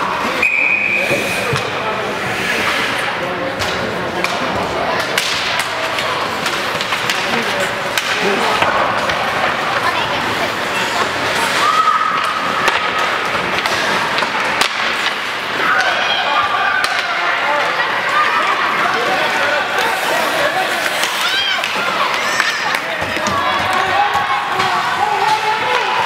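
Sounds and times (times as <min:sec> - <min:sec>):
murmur of spectators: 0:00.0 - 0:26.0
hockey sticks and skates clacking: 0:00.1 - 0:26.0
players shouting: 0:04.6 - 0:26.0.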